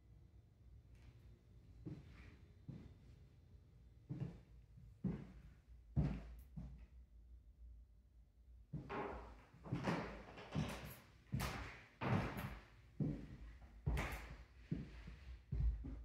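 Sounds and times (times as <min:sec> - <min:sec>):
footsteps on hardwood floor: 0:08.8 - 0:16.0.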